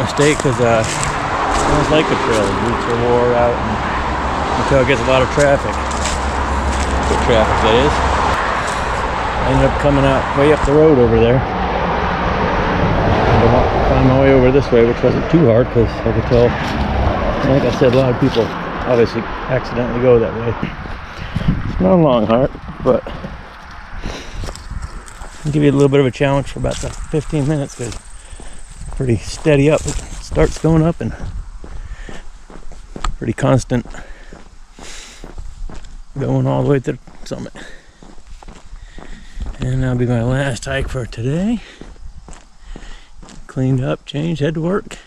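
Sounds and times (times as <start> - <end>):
footsteps on asphalt: 0.0 - 3.1, 3.9 - 10.8, 16.4 - 19.0, 20.6 - 43.8
man speaking: 0.0 - 3.9, 4.5 - 6.0, 7.0 - 8.1, 9.4 - 11.5, 13.2 - 16.6, 17.4 - 23.2, 25.4 - 28.0, 28.9 - 31.3, 33.2 - 34.0, 36.2 - 37.8, 39.5 - 41.8, 43.4 - 45.0
steady rushing noise: 0.0 - 32.4.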